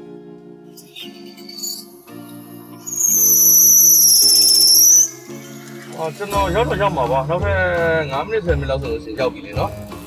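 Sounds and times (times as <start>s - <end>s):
high-pitched trilling whistle: 0.8s - 6.8s.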